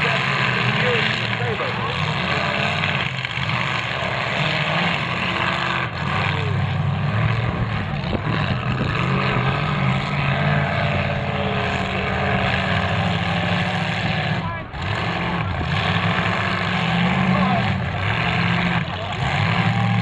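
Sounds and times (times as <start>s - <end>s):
car engines revving: 0.0s - 20.0s.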